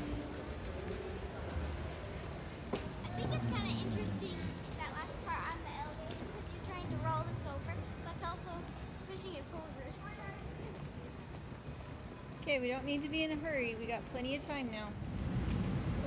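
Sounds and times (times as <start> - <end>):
faint voices: 0.0 - 11.3
rolling suitcase wheels: 0.0 - 16.0.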